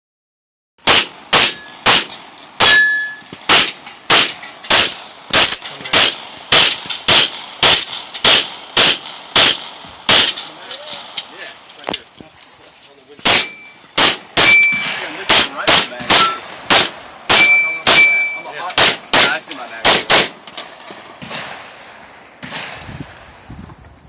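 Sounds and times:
rapid gunshots: 0.8s - 2.8s, 3.5s - 11.2s, 13.2s - 20.4s, 21.2s - 21.7s, 22.4s - 22.8s
steel target ringing: 0.9s - 10.6s, 13.3s - 19.5s.

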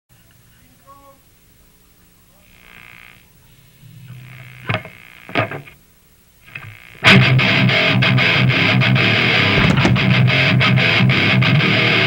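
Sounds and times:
amplifier hum: 0.2s - 12.0s
distorted electric guitar noises: 2.4s - 5.8s, 6.4s - 12.0s
rock band playing: 7.0s - 12.0s.

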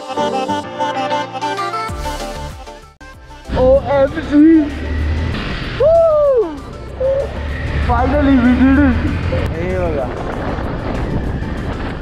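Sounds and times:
motorcycle engine: 3.4s - 12.0s
wind rush: 3.5s - 12.0s
person whooping: 5.8s - 7.3s.

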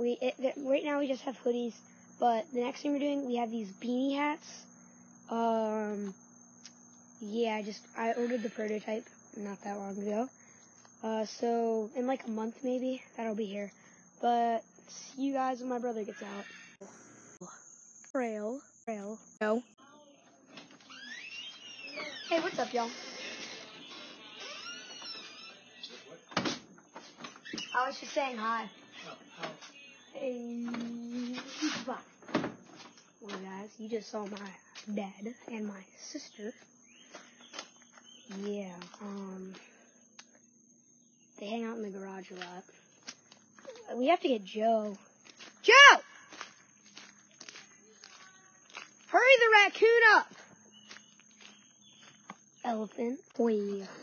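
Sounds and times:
faint footsteps outdoors: 4.4s - 54.0s.

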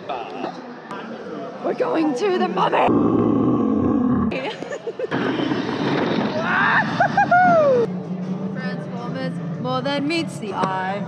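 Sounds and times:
woman growling: 2.8s - 4.6s.

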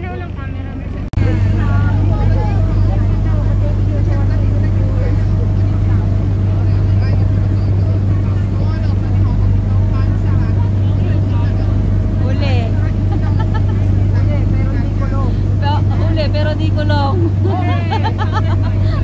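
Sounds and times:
faint passengers talking: 0.0s - 19.0s
ferry engine droning: 0.0s - 19.0s.

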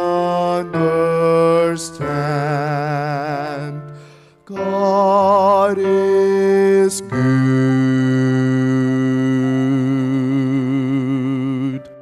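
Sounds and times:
man singing long note: 0.0s - 3.9s, 4.5s - 12.0s.

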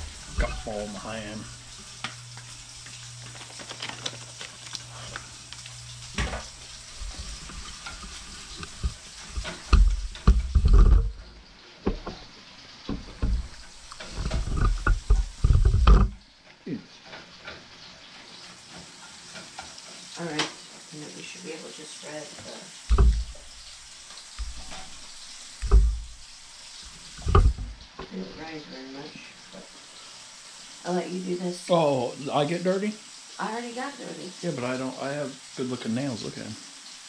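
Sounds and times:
meat sizzling in a frying pan: 0.0s - 37.0s
spatula scraping a pan: 6.5s - 11.2s, 13.4s - 16.0s.

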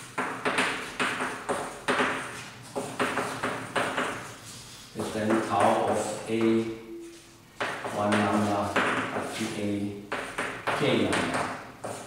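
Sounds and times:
chalk scraping on blackboard: 0.0s - 12.0s
chalk tapping blackboard: 0.0s - 12.0s.

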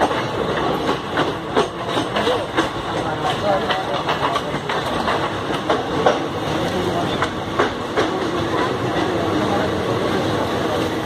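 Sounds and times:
rail joint clicks: 0.0s - 10.6s
train wheels rumbling on rails: 0.0s - 11.0s.

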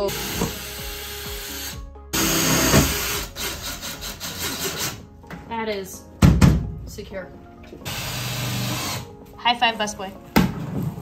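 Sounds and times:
drill driving screws: 0.0s - 5.0s, 7.8s - 9.1s.

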